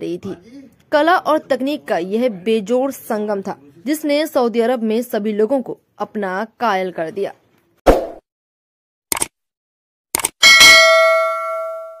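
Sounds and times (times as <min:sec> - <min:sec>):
bell ringing: 0:10.4 - 0:12.0.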